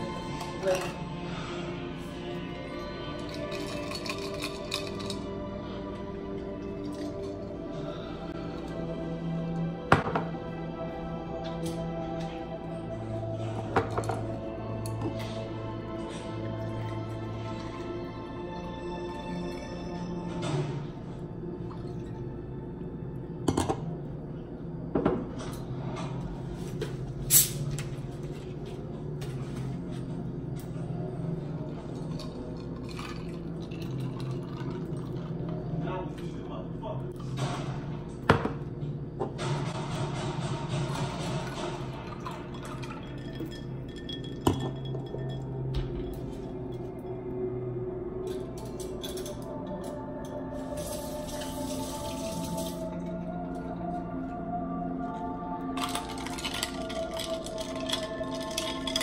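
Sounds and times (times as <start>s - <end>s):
background music: 0.0s - 59.0s
liquid pouring into a glass: 32.0s - 35.5s, 41.9s - 45.6s
glass clinks: 43.2s - 45.6s.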